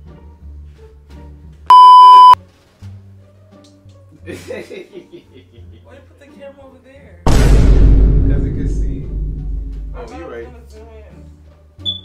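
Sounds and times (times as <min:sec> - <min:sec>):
quiet background music: 0:00.0 - 0:01.7, 0:02.4 - 0:07.3, 0:08.2 - 0:12.0
electronic bleep tone: 0:01.7 - 0:02.4.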